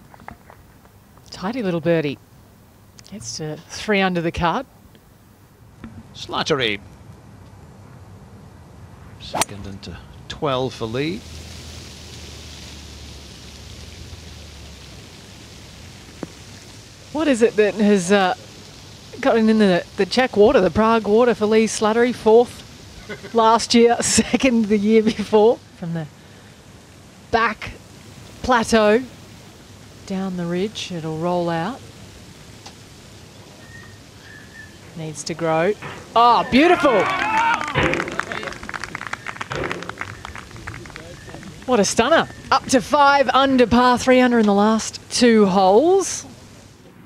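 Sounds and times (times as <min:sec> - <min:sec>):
outdoor background hiss: 0:00.0 - 0:47.0.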